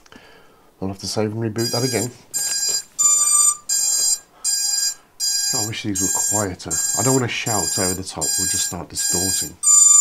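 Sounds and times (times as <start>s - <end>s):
high-pitched electronic beeping: 1.6s - 10.0s.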